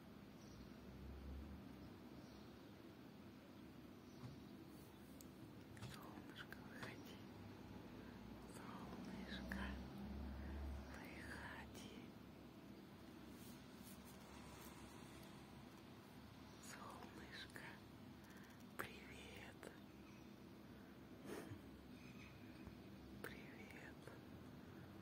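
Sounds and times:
faint whispered voice: 0:04.8 - 0:12.2, 0:16.5 - 0:20.2, 0:23.2 - 0:25.0.

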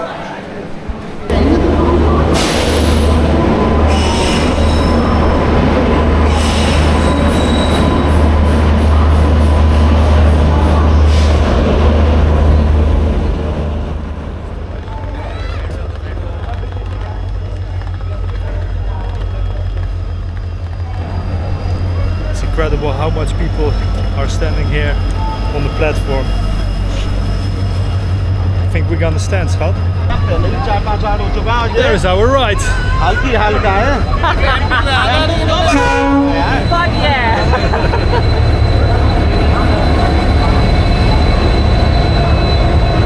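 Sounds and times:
train rumbling: 0:00.0 - 0:43.0
high train squeals: 0:01.4 - 0:43.0.

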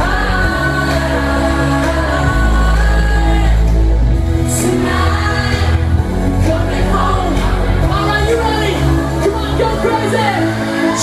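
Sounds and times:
drums: 0:00.0 - 0:11.0
heavy bass: 0:00.0 - 0:11.0.

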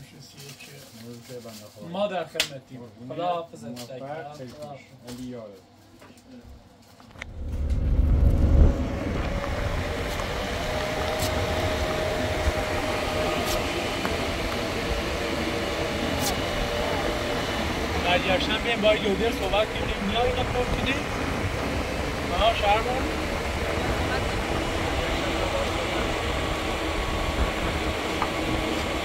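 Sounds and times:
low rumble: 0:07.1 - 0:15.6
car engine and road noise: 0:07.1 - 0:29.0.

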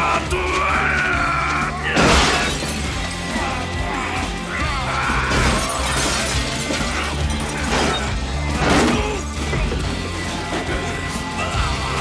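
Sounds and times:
dramatic film score music: 0:00.0 - 0:12.0
glass shattering: 0:02.0 - 0:03.2, 0:05.3 - 0:09.3.

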